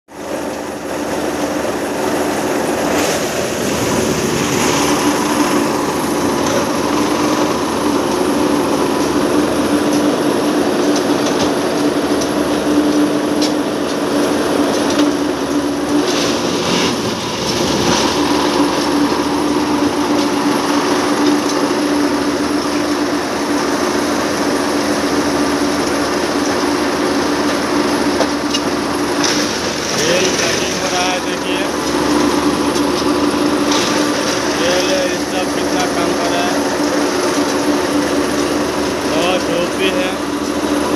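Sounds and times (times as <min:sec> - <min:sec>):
machine engine and hydraulic drone: 0:00.1 - 0:40.9
loud clattering of tamping units: 0:00.5 - 0:40.9.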